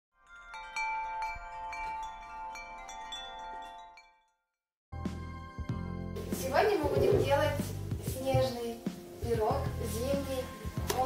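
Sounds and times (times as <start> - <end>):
chimes ringing: 0.2 - 4.6.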